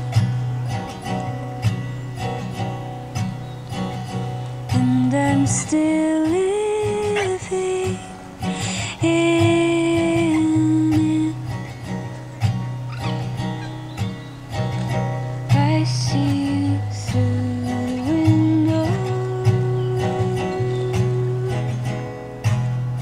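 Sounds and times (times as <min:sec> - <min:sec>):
acoustic guitar: 0:00.0 - 0:23.0
woman singing: 0:04.7 - 0:12.0, 0:15.5 - 0:22.2.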